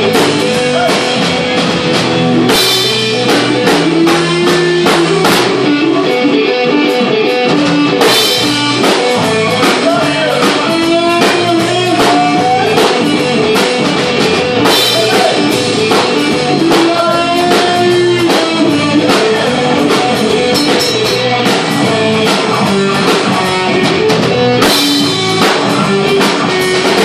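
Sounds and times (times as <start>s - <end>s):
bass guitar: 0.0s - 27.0s
drum kit: 0.0s - 27.0s
electric guitar lines: 0.0s - 27.0s.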